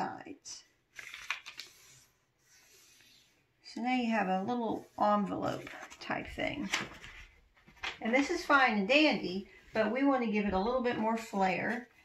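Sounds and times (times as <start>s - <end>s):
paper rustling and crackling: 0.9s - 3.3s, 5.2s - 8.3s.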